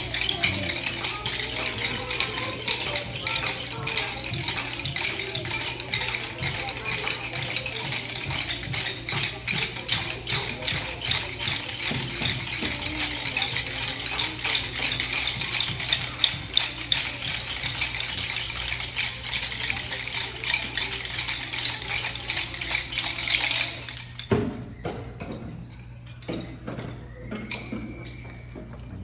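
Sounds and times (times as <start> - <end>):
hand shakers rattling: 0.0 - 29.0.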